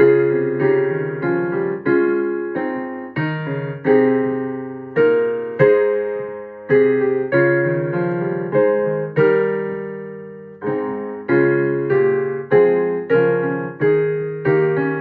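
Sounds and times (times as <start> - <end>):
digital piano playing hymn chords: 0.0 - 15.0.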